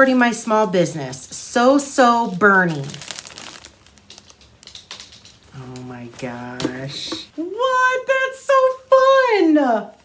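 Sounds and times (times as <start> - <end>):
plastic wrapping crinkling: 2.0 - 7.3.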